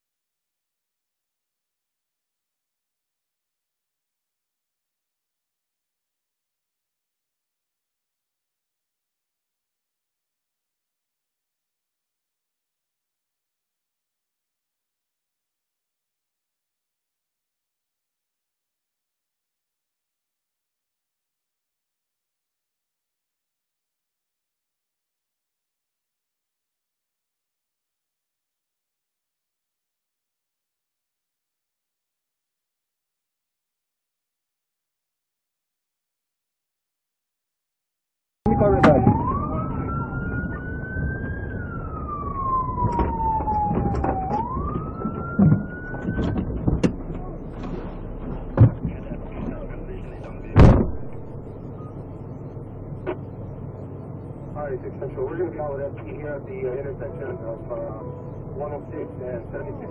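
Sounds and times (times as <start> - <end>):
police siren wailing: 38.5 - 48.2, 50.4 - 52.4
car engine and road noise: 38.5 - 59.9.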